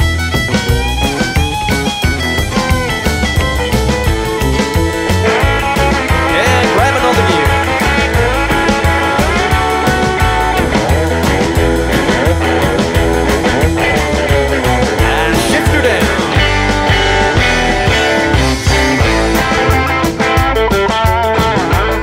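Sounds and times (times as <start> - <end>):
fast bass and drum beat: 0.0 - 22.0
guitar with sliding notes: 0.0 - 22.0.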